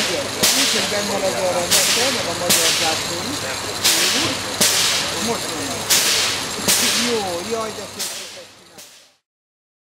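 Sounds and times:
steam hissing from locomotive: 0.0s - 9.2s.

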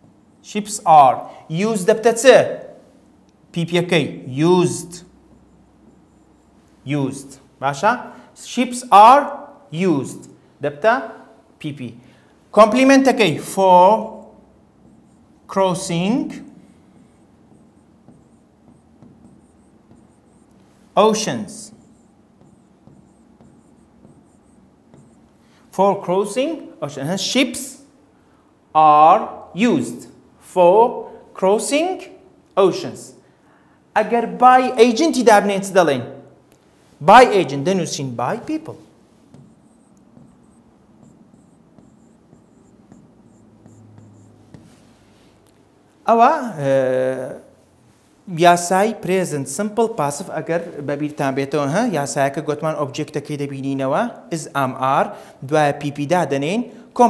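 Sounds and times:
stylus tapping and scratching screen: 0.0s - 1.9s, 4.7s - 7.9s, 12.6s - 26.4s, 36.5s - 46.0s.

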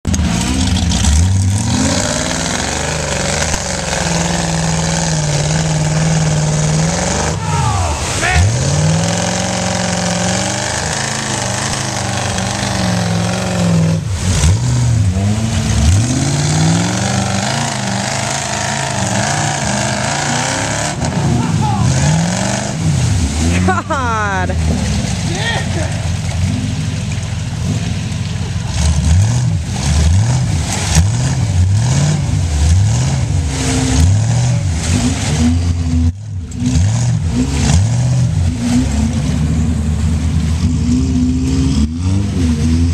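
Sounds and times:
engine revving under load: 0.1s - 42.9s.

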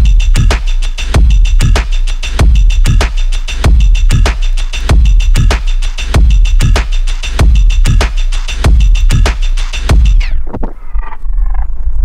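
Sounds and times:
drum record winding down on turntable: 0.0s - 12.0s.

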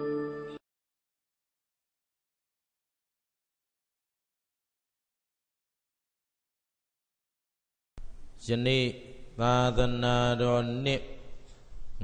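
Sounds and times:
monk chanting into a microphone: 8.4s - 11.3s.

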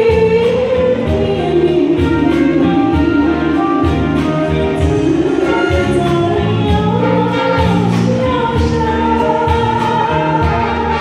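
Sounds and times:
woman singing pop ballad with band: 0.0s - 11.0s.

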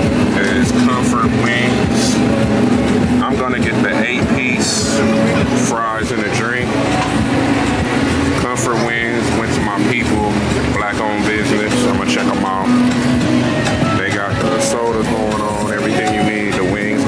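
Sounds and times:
people talking: 0.0s - 2.4s, 3.1s - 7.5s, 8.1s - 13.2s, 13.8s - 17.0s
motor humming: 0.0s - 16.8s.

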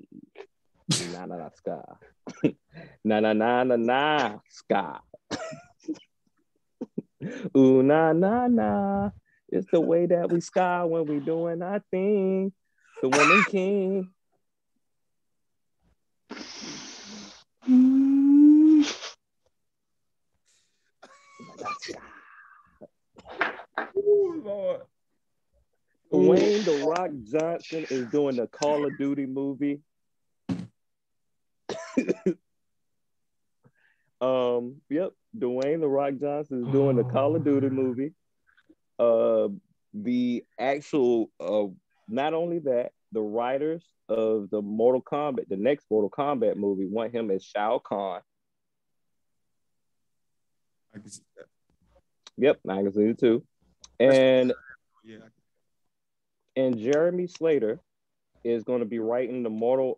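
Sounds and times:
man clearing throat: 5.3s - 5.6s, 13.0s - 13.7s, 27.8s - 29.2s, 31.7s - 32.4s.

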